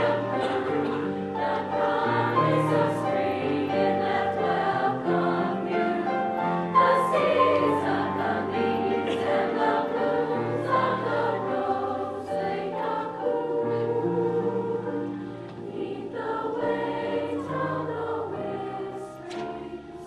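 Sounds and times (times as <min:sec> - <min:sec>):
piano accompaniment: 0:00.0 - 0:20.0
women's choir singing: 0:00.0 - 0:20.0.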